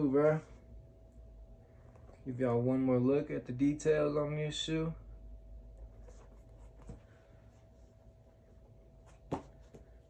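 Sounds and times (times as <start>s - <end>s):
sneakers rubbing and scuffing: 9.0s - 10.0s.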